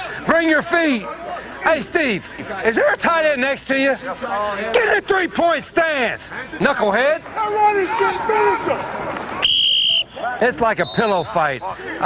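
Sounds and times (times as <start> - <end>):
man shouting: 7.4 - 8.9
whistle blown: 9.4 - 11.3.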